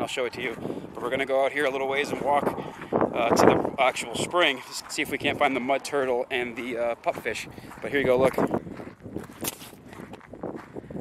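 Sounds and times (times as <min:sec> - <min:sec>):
footsteps on sandy ground: 0:00.0 - 0:11.0.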